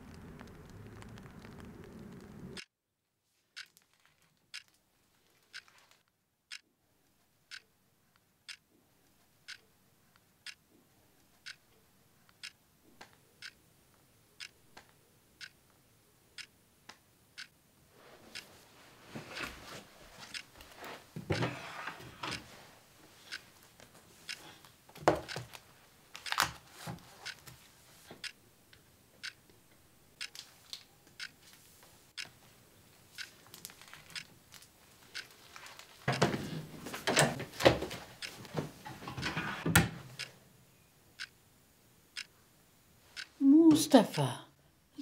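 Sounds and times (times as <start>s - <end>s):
small clicks: 14.4s - 15.6s
papers rustling on a wooden desk: 18.2s - 28.2s, 33.3s - 39.6s.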